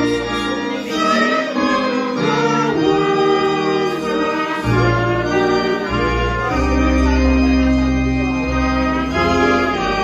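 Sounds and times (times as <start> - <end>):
choir singing: 0.0 - 10.0
steady low accompaniment: 0.0 - 10.0.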